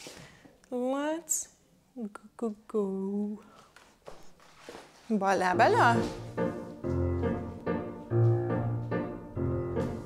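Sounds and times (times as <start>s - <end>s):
piano chords: 5.4s - 10.0s.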